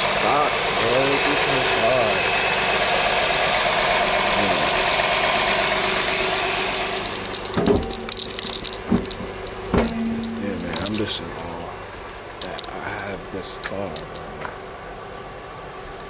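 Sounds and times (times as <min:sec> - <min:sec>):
car engine idling: 0:00.0 - 0:16.0
car hood thumping shut: 0:09.7 - 0:10.2.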